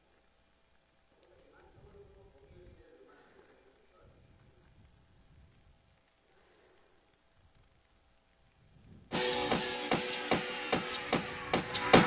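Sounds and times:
electronic dance music: 9.1 - 12.0.

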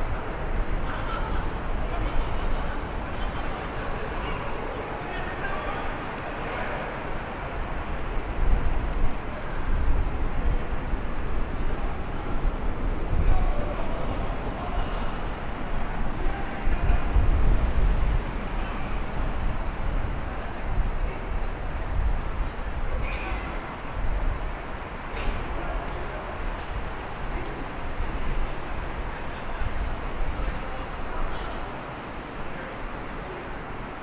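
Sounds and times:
faint voices: 0.0 - 34.0
traffic wash: 0.0 - 34.0.

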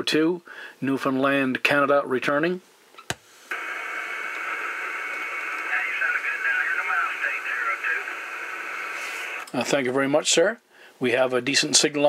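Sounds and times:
radio static hiss: 3.3 - 9.8.

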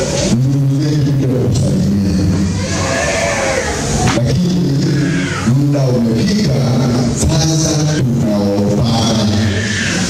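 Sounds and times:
man chanting through loudspeaker: 0.0 - 2.6, 4.0 - 10.0.

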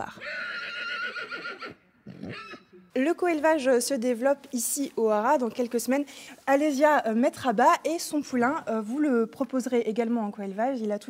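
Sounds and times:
horse whinnying: 0.1 - 2.8.

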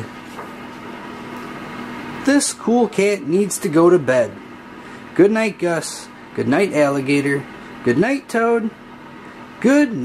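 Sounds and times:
room hum and hiss: 0.0 - 10.0.

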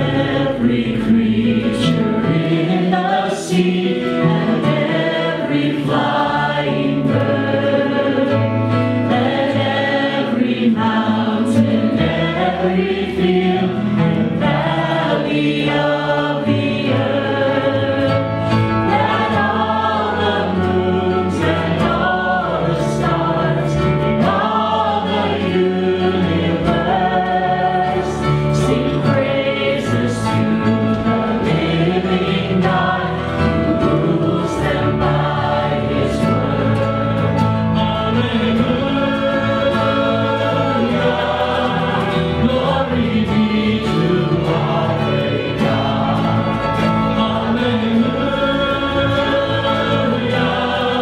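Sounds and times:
acoustic guitars: 0.0 - 51.0
people singing: 0.0 - 51.0.

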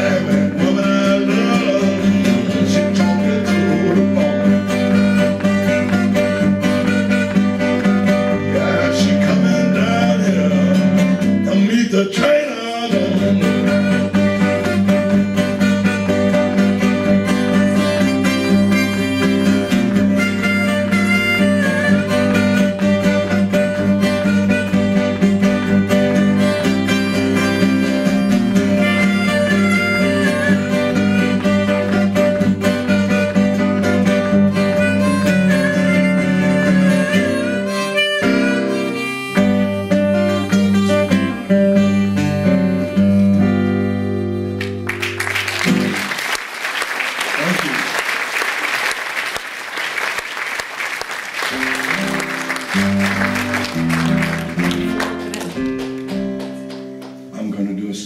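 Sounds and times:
harmonica: 0.0 - 46.1, 51.4 - 56.5
acoustic blues guitar: 0.0 - 48.1, 49.8 - 58.0.

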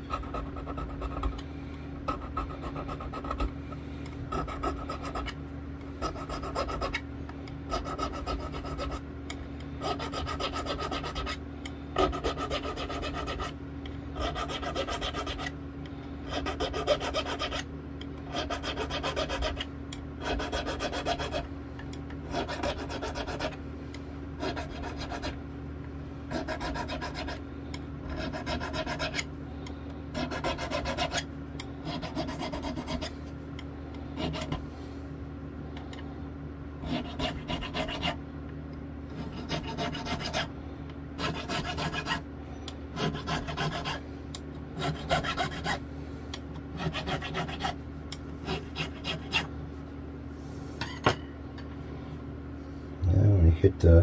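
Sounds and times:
steady low hum: 0.0 - 54.0
file rasping on metal frets: 7.7 - 9.0, 9.8 - 11.4, 12.0 - 13.5, 14.2 - 15.5, 16.3 - 17.6, 18.3 - 19.6, 20.2 - 21.4, 22.3 - 23.6, 24.4 - 25.4, 26.3 - 27.4, 28.1 - 29.2, 30.2 - 31.2, 31.8 - 33.1, 34.2 - 34.6, 36.8 - 38.2, 39.2 - 40.5, 41.2 - 42.2, 43.0 - 44.0, 44.8 - 45.8, 46.8 - 47.8, 48.4 - 49.5.

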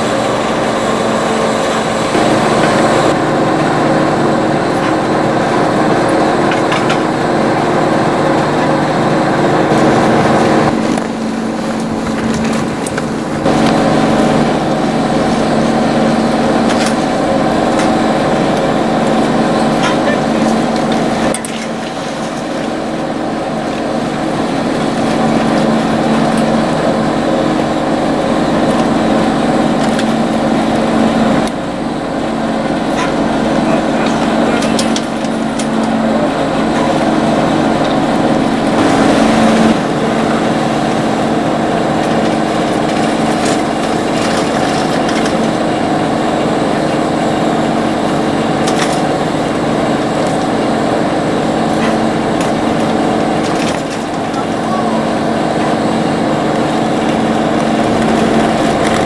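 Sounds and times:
chairlift machinery hum: 0.0 - 59.0.

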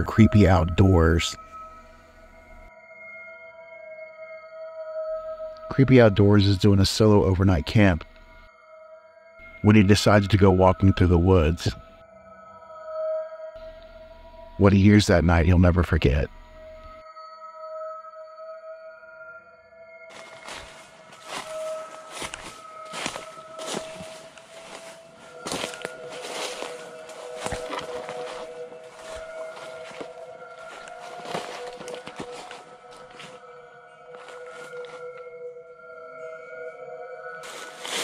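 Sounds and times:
eerie drone of sustained tones: 0.0 - 38.0
footsteps through dry leaves: 20.1 - 33.5, 34.1 - 35.2, 37.4 - 38.0.

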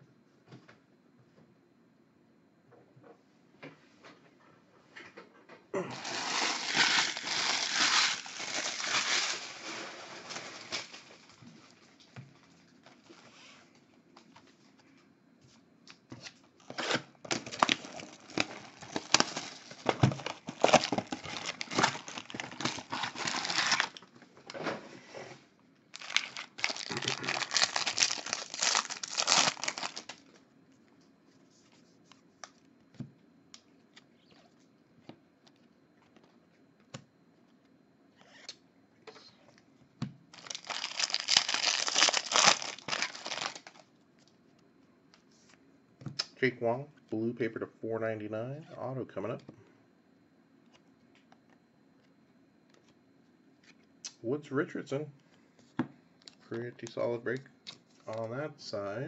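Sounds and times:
plastic wrapping crinkling and tearing: 5.9 - 11.4, 16.6 - 24.0, 25.9 - 30.4, 40.3 - 43.9.

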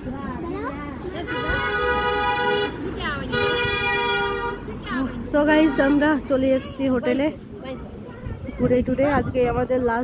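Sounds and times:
vehicle horn honking: 1.2 - 4.7.

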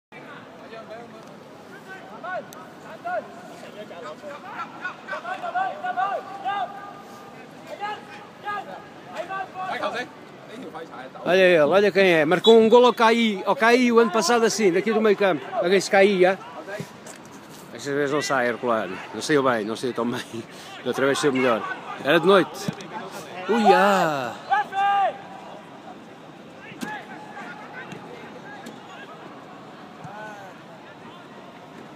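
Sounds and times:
open-air background noise: 0.1 - 31.9
distant shouts of footballers: 4.3 - 9.9, 20.6 - 26.0.

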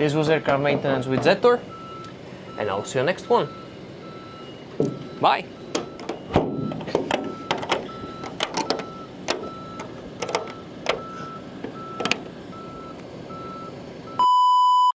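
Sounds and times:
reversing alarm beeping: 0.3 - 0.6, 1.4 - 14.9
sharp clicks and knocks: 4.7 - 12.3.

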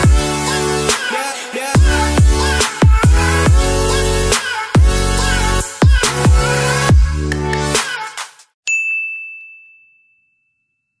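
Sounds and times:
high bell-like ding: 8.7 - 11.0.

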